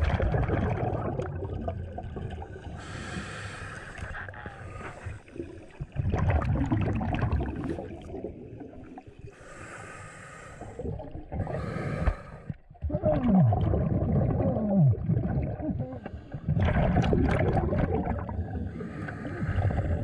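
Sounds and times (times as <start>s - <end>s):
underwater exhaled bubbles: 0.0s - 9.8s, 10.4s - 20.0s
regulator hissing inhalations: 2.8s - 5.3s, 9.4s - 10.8s, 11.4s - 12.6s.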